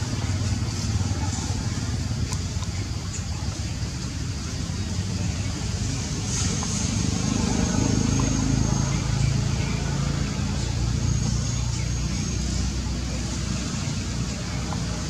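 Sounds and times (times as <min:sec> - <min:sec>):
indistinct voices: 0:00.0 - 0:15.0
motor engine rumbling: 0:00.0 - 0:15.0.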